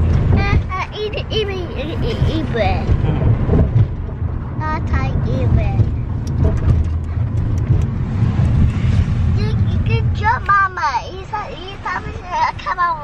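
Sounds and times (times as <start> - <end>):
car cabin rumble: 0.0 - 13.0.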